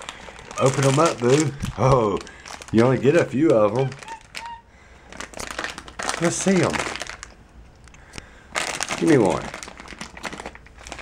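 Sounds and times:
plastic packet crinkling: 0.0s - 11.0s.

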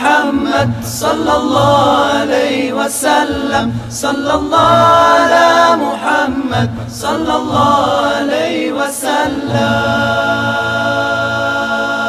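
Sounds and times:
men singing a cappella in harmony: 0.0s - 12.0s.

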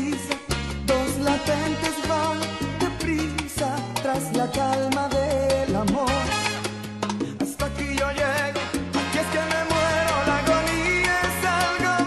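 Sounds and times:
salsa band playing: 0.0s - 12.0s.

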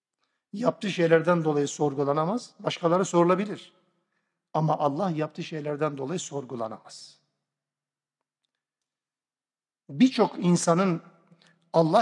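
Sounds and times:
man speaking: 0.5s - 3.8s, 4.5s - 7.3s, 9.8s - 12.0s.

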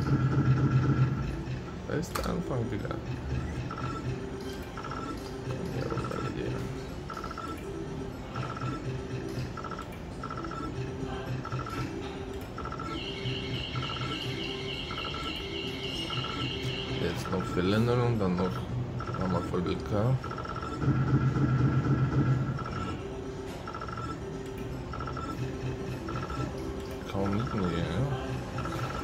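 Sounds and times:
slot machine electronic jingle: 3.3s - 11.9s, 12.5s - 29.0s.

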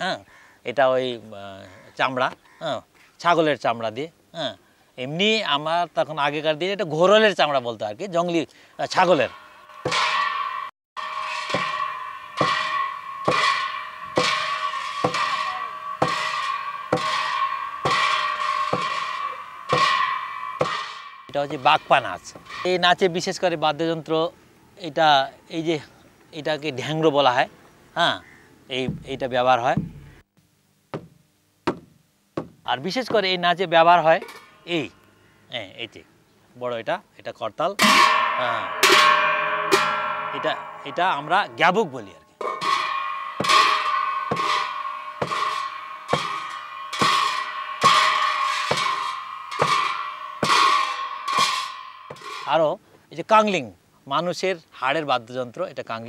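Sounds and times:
hand cymbals clashing: 8.8s - 23.8s, 37.8s - 52.9s.

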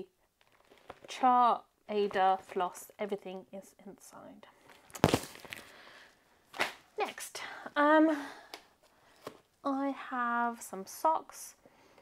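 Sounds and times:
plastic package slapped down: 4.9s - 5.7s, 6.5s - 6.8s.

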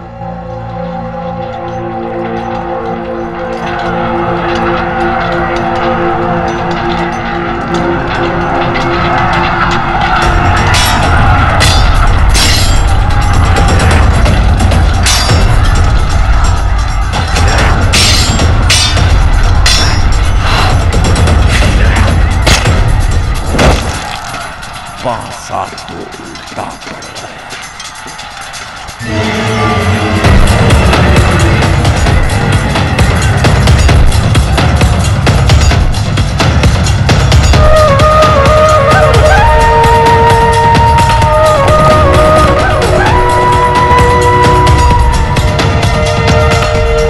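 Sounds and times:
dramatic film score: 0.0s - 47.0s
sharp hits: 6.4s - 25.0s.

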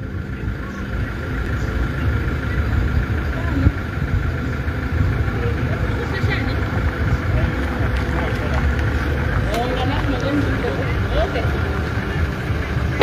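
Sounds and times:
faint voices: 0.0s - 13.0s
low outdoor rumble: 0.0s - 13.0s.

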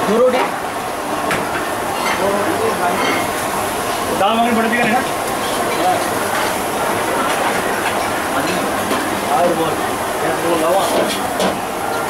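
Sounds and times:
rushing kitchen din: 1.2s - 12.0s.

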